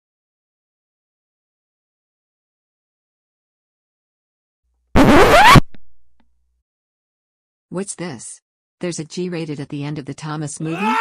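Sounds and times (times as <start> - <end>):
record scratch: 5.0 - 5.9.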